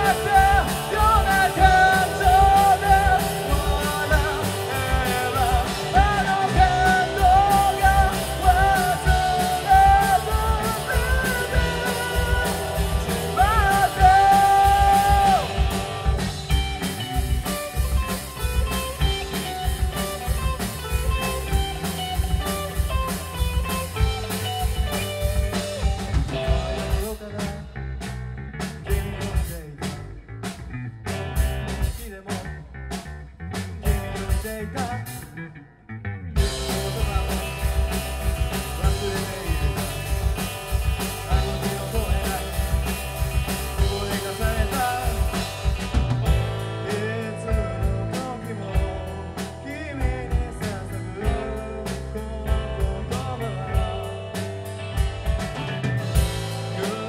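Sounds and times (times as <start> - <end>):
man singing long notes: 0.0 - 16.3, 36.4 - 37.7, 38.8 - 40.0, 41.2 - 42.7, 43.8 - 45.5, 46.9 - 54.1
live rock band playing: 0.0 - 35.4, 36.3 - 57.0
drums: 0.0 - 35.6, 36.3 - 57.0
electric guitar: 0.0 - 57.0.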